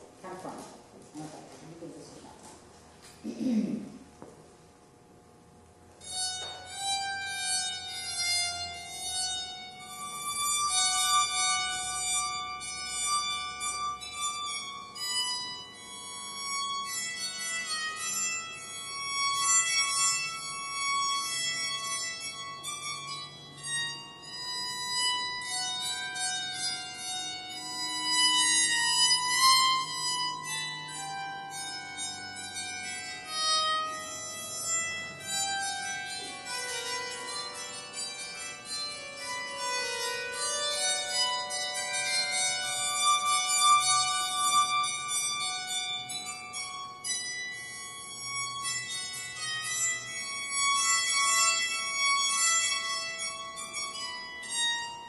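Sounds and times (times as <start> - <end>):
bowed psaltery melody: 5.9 - 55.0.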